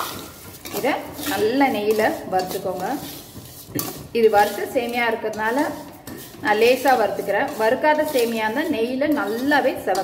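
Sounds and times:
ladle scraping pan: 0.0s - 10.0s.

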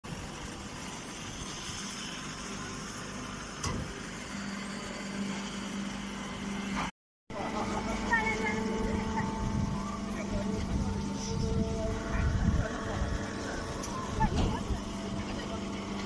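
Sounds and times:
baling machinery running: 0.1s - 16.0s
steady low hum: 0.1s - 16.0s.

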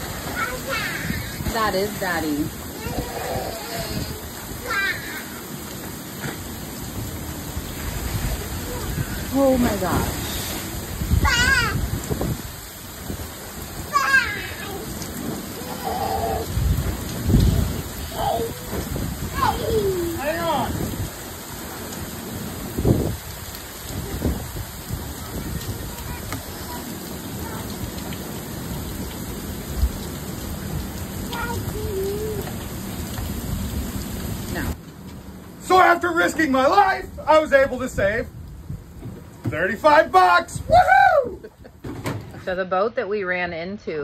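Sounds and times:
wind gusts hitting microphone: 0.0s - 42.5s
rain hissing: 0.0s - 43.0s.

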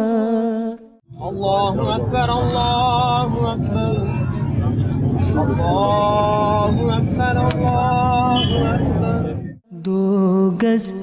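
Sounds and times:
man singing unaccompanied: 0.0s - 4.1s, 9.7s - 11.0s
steady low rumble: 1.1s - 9.6s.

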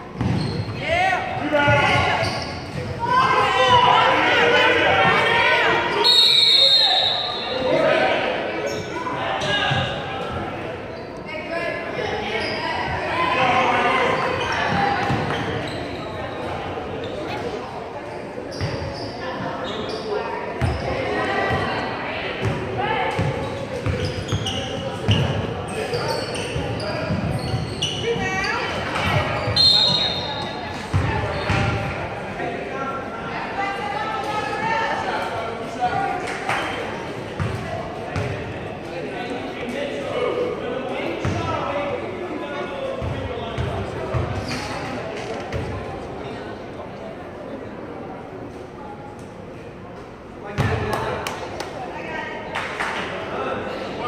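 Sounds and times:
people chattering and calling: 0.0s - 54.0s.

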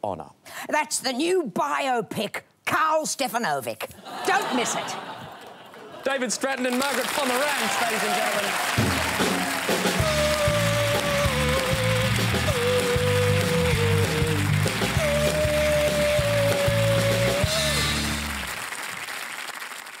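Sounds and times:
applause: 6.3s - 20.0s
heavy metal band playing: 8.8s - 18.5s
singer holding long high notes: 10.0s - 18.2s.

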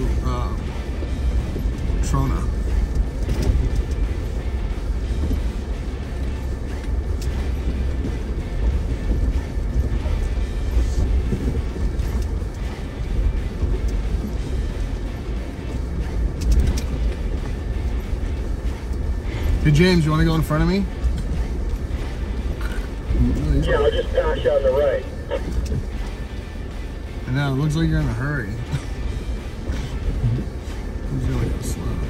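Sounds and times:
off-road vehicle engine rumble: 0.0s - 32.0s.

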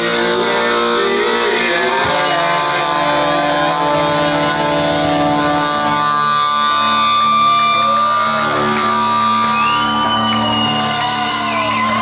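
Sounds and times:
electric guitars holding notes: 0.0s - 12.0s
live rock band playing: 0.0s - 12.0s.

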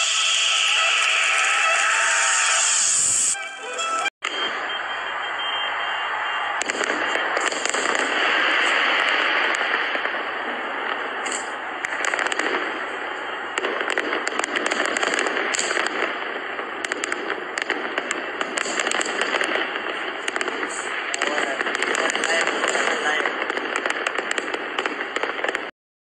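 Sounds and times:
fireworks popping and crackling: 0.0s - 3.4s, 4.2s - 25.7s
voices: 19.6s - 23.5s.

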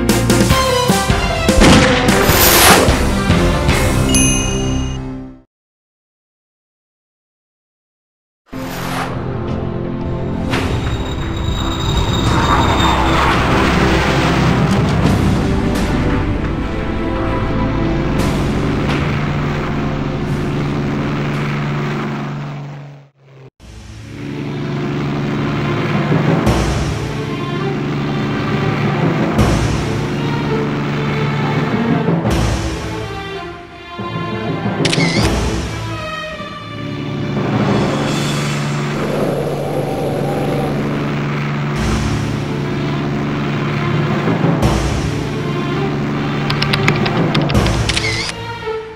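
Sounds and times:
background music: 0.0s - 5.4s, 13.6s - 20.3s
small flying craft engine whirring: 36.6s - 44.6s
deep rumble: 38.6s - 43.5s.

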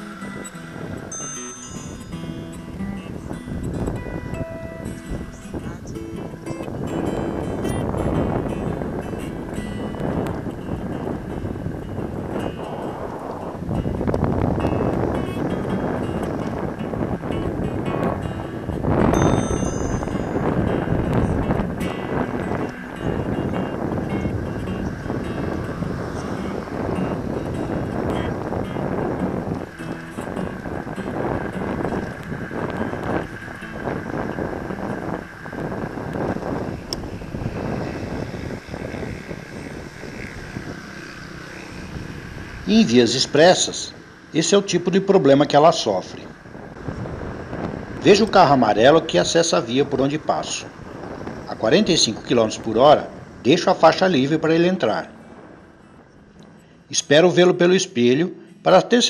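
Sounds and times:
road noise: 0.0s - 59.0s
wind buffeting microphone: 0.0s - 59.0s.

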